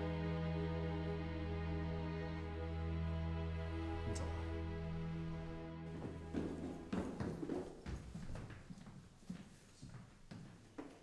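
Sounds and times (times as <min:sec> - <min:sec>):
footsteps on wooden stairs: 0:05.9 - 0:11.0.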